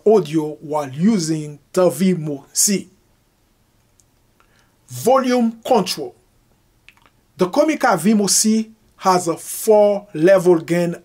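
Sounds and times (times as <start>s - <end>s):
man talking: 0.0s - 3.0s, 4.9s - 6.2s, 7.4s - 11.0s
faint short clicks: 6.8s - 7.2s.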